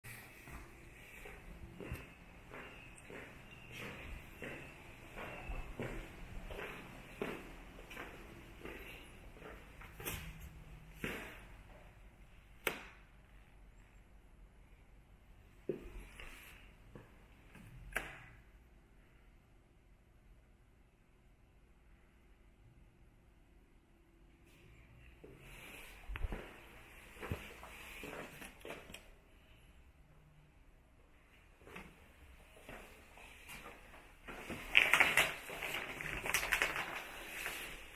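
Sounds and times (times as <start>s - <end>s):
footsteps on laminate floor: 0.1s - 11.8s, 25.2s - 29.0s.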